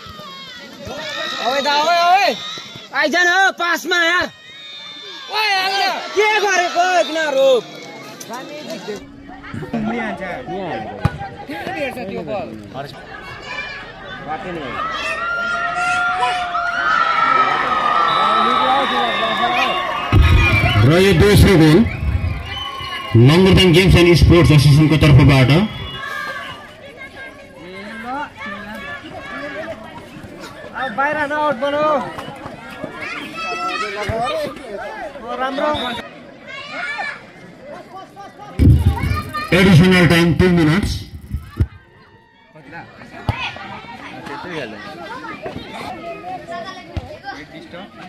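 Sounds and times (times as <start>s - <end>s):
crowd shouting and chattering: 0.0s - 48.0s
people talking and calling out: 0.0s - 48.0s.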